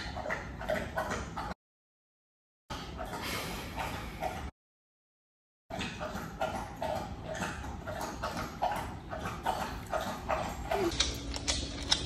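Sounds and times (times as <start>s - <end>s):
dog claws clicking on floor: 10.8s - 12.0s.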